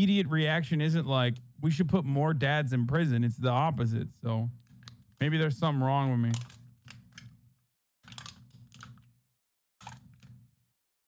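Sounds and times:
computer keyboard clicking: 8.1 - 9.0.

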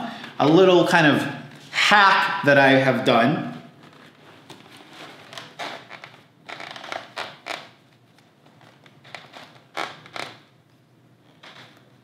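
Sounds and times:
headphones and helmet handling noise: 3.8 - 10.5.

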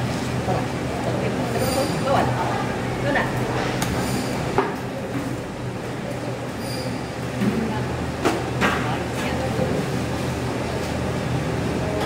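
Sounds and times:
machine hum: 0.0 - 8.3.

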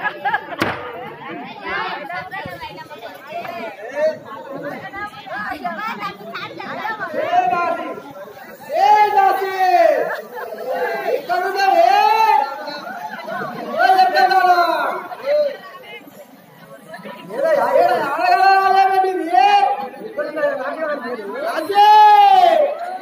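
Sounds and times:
voices talking over one another: 0.0 - 23.0.

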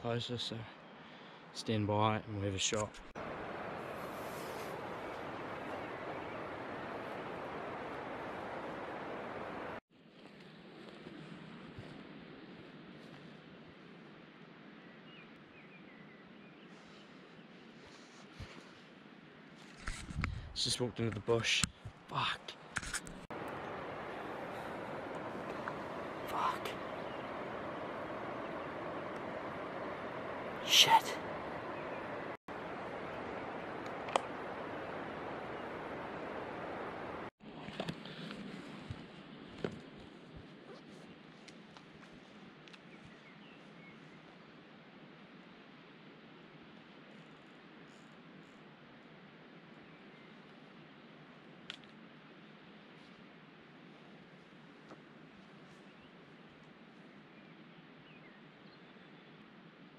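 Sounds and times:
outdoor background hiss: 0.0 - 59.9.

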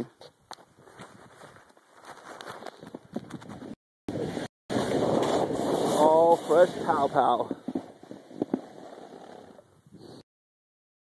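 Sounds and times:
snowboard sliding through powder: 1.3 - 10.2
wind on microphone: 2.8 - 8.8.

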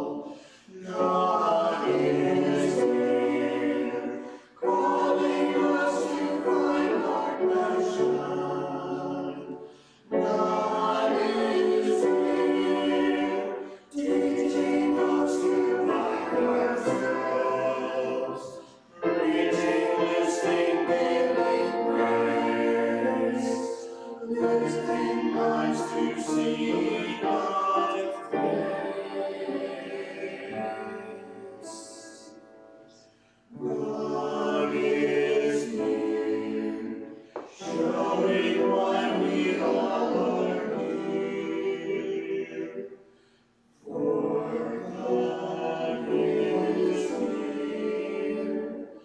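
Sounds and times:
mixed choir singing: 0.0 - 43.2, 43.8 - 49.0
piano accompaniment: 0.8 - 42.0.

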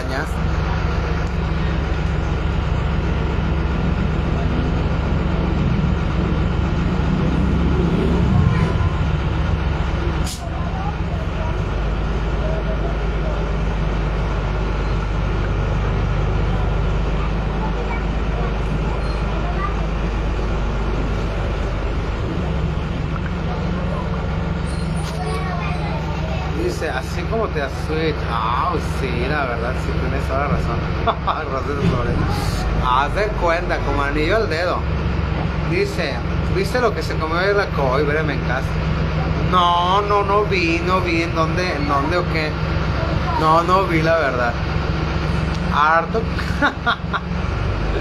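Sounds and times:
bus engine drone: 0.0 - 48.0.

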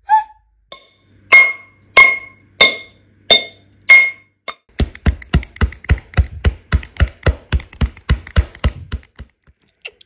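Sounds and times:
ball dribbling thumps: 4.7 - 9.4.

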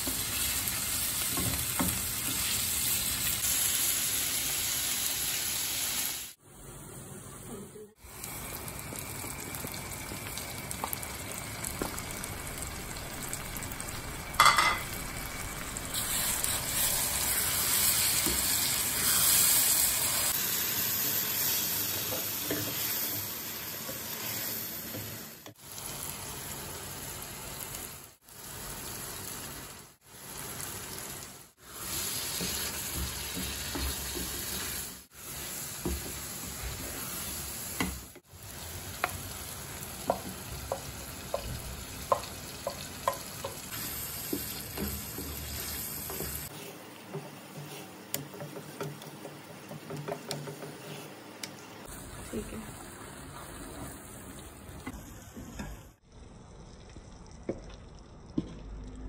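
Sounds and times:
onions sizzling in a pot: 0.0 - 56.0
wooden spatula stirring: 39.0 - 51.2.

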